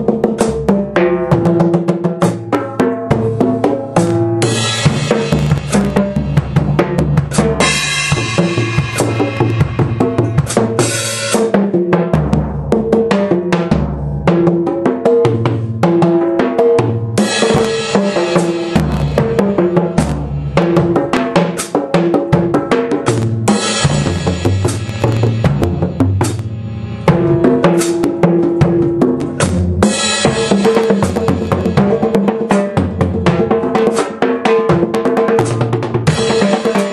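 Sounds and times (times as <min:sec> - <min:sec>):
drum kit toms and snare: 0:00.0 - 0:36.9
ringing cymbals: 0:23.5 - 0:28.1.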